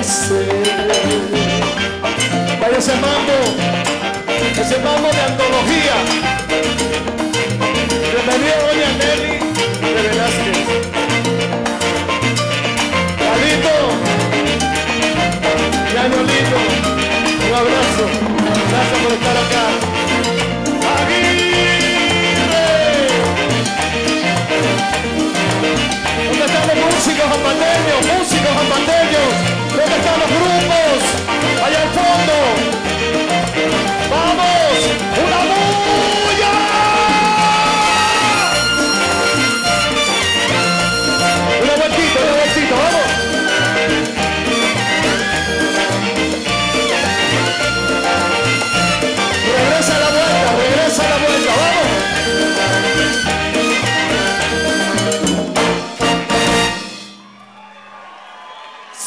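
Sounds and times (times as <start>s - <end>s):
latin big band playing: 0.0s - 59.0s.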